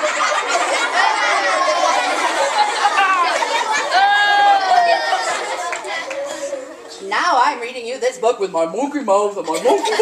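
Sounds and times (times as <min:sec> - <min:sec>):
children laughing and chattering: 0:00.0 - 0:07.3, 0:09.1 - 0:10.0.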